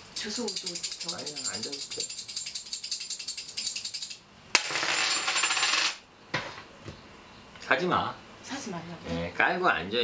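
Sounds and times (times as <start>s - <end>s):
brass coins rattling: 0.0s - 6.0s.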